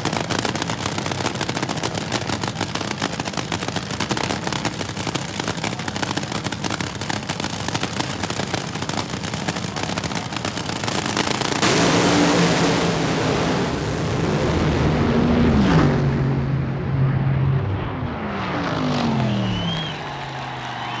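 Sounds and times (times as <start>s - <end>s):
dragster engine idling with pops: 0.0s - 11.9s.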